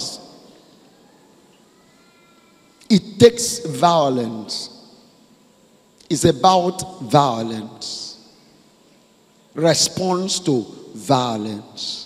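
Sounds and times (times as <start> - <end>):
man's amplified voice: 0.0 - 0.6, 2.8 - 5.1, 6.0 - 8.5, 9.5 - 12.0
faint high-pitched cry: 0.8 - 2.9.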